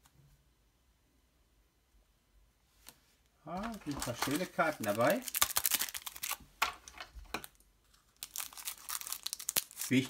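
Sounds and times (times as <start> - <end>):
foil wrapper crinkling and tearing: 3.6 - 6.4, 7.4 - 10.0.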